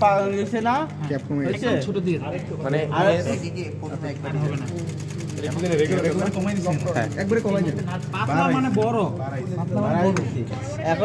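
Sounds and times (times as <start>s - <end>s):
sewing machine clatter: 3.9s - 9.8s.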